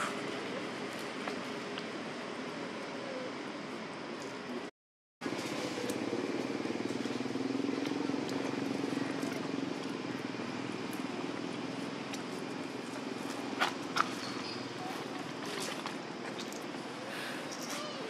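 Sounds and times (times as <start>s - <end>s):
motor engine humming: 5.3s - 17.1s.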